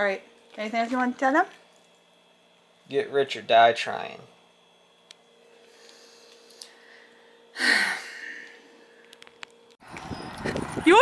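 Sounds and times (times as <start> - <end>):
faint steady hum: 0.0 - 9.8
outdoor ambience: 0.0 - 11.0.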